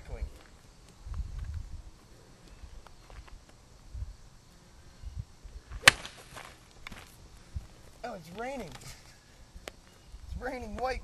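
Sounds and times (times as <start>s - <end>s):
golf club smacking a tub: 5.8s - 6.2s.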